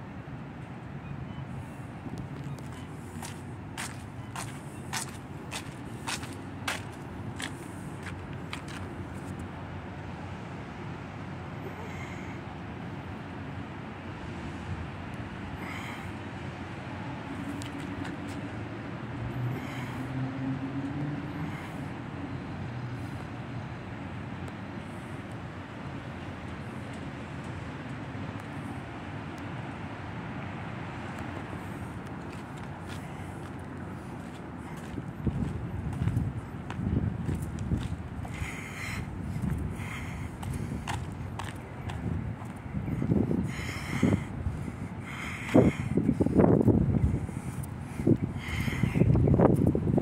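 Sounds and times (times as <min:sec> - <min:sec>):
wind buffeting microphone: 0:32.2 - 0:50.0.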